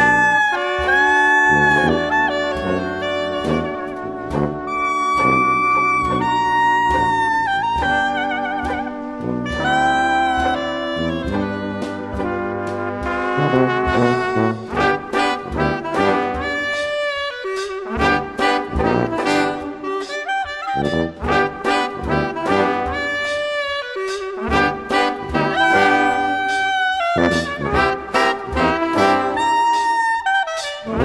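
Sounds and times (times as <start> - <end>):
jazz band playing: 0.0 - 31.0.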